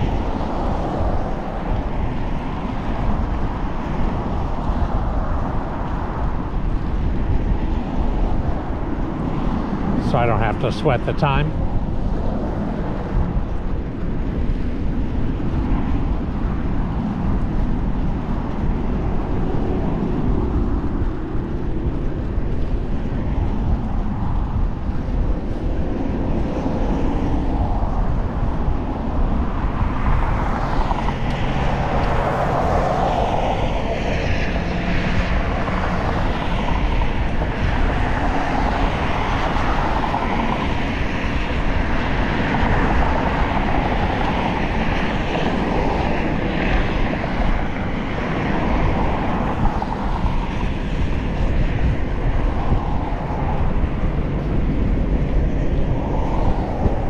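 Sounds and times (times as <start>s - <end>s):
steady traffic noise: 0.0s - 57.0s
wind rushing on microphone: 0.0s - 57.0s.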